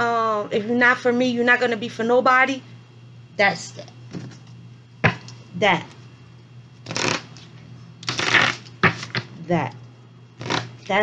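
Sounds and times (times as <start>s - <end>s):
cards riffle shuffling: 6.9s - 9.3s.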